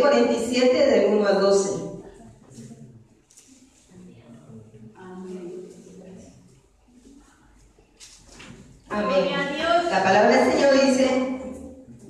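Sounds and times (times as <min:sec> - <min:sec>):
faint indistinct voices: 0:01.5 - 0:12.0.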